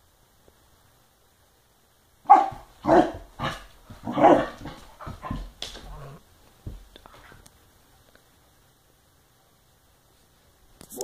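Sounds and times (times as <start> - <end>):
puppy barking: 2.2 - 6.1.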